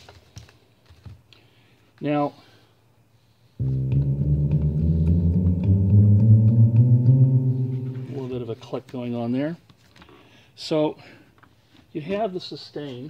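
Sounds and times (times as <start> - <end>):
low bass synthesizer tone: 3.6 - 8.6.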